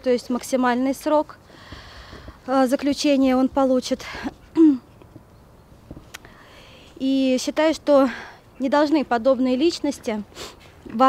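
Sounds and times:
quick breath: 1.5s - 2.4s, 6.2s - 7.0s
woman clearing her throat: 4.6s - 4.9s.

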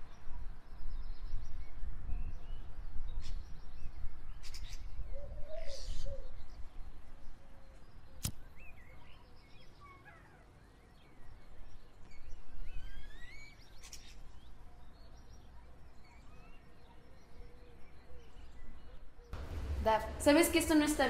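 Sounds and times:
low outdoor rumble: 19.4s - 21.0s.

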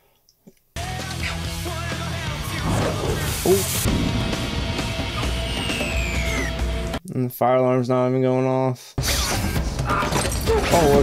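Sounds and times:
horror film music: 2.3s - 7.0s
low rumble: 2.4s - 7.0s.

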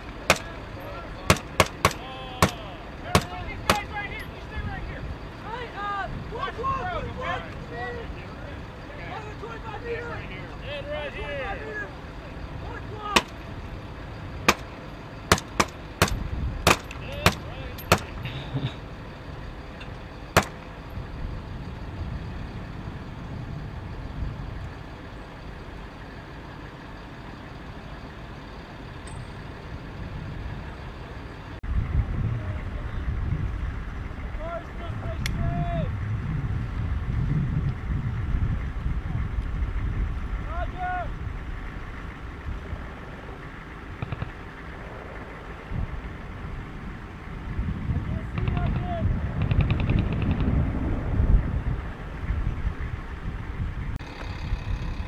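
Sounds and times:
sharp cracks: 0.0s - 0.6s, 1.3s - 3.9s, 13.2s - 13.5s, 14.4s - 18.2s, 20.4s - 20.8s, 44.0s - 45.3s, 48.3s - 50.6s
diesel engine rumbling: 0.0s - 55.0s.

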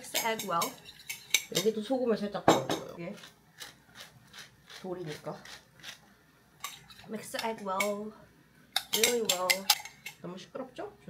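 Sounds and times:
spoon clinking in glass bowl: 8.8s - 10.2s.

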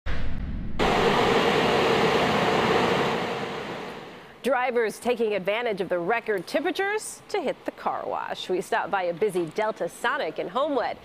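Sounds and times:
low rumble: 0.1s - 4.4s.

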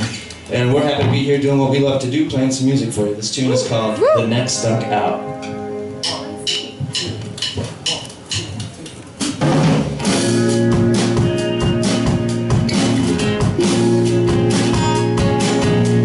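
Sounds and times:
live rock band playing: 9.4s - 16.0s.

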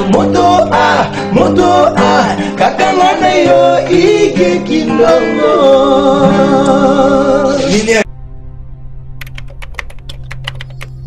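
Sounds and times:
low musical drone: 8.1s - 11.0s
computer keyboard typing: 9.2s - 11.0s.

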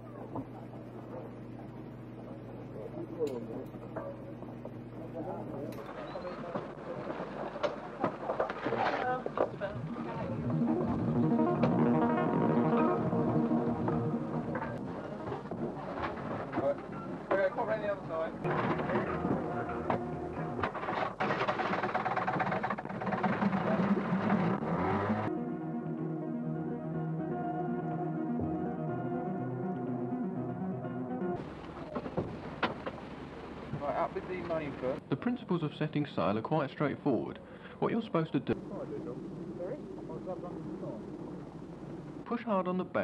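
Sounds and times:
muffled music of held tones: 0.0s - 8.0s, 9.2s - 21.7s, 22.3s - 32.0s
faint indistinct voices: 0.0s - 11.5s, 14.7s - 21.0s
noisy outdoor ambience: 0.0s - 43.0s
steady low hum: 0.0s - 43.0s.

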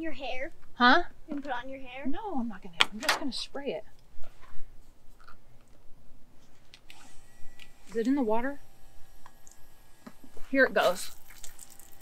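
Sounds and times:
pump electric whine: 6.9s - 12.0s.

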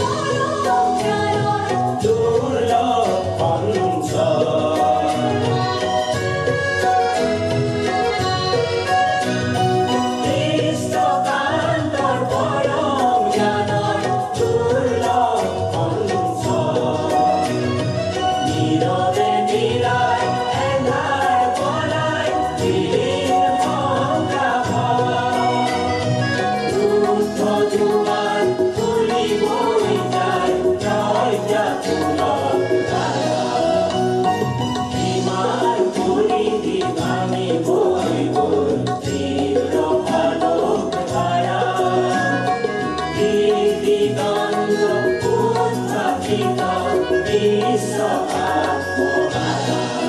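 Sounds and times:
group singing slow song: 0.0s - 7.2s, 7.9s - 50.0s
instrumental accompaniment: 0.0s - 50.0s.

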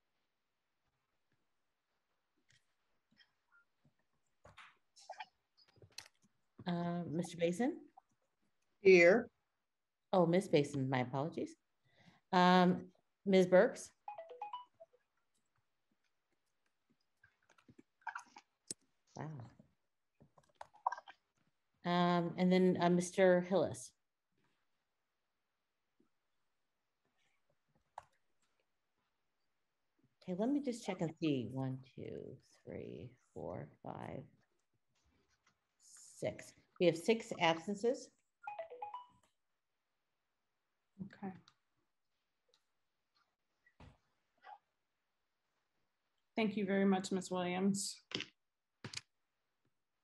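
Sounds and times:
electronic beeps: 14.1s - 14.9s, 38.4s - 39.2s.

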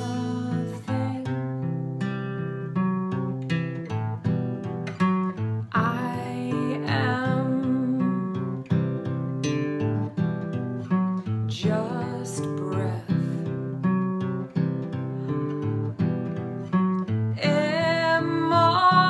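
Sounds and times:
woman singing softly: 0.0s - 1.8s, 5.7s - 8.6s, 11.5s - 13.6s, 17.4s - 19.0s
acoustic guitar plucked notes: 0.0s - 19.0s.

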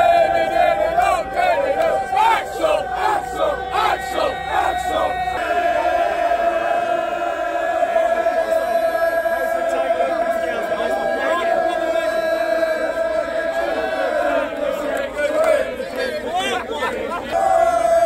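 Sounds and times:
crowd chanting in unison: 0.0s - 18.0s
crowd holding a sung note: 0.0s - 18.0s.

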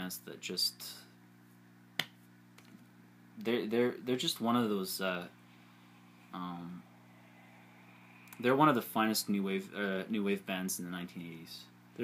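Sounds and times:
faint low hum: 0.0s - 12.0s
finger snap: 2.0s - 2.2s.

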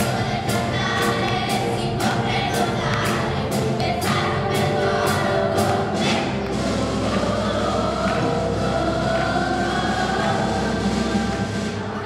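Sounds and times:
children singing: 0.0s - 12.0s.

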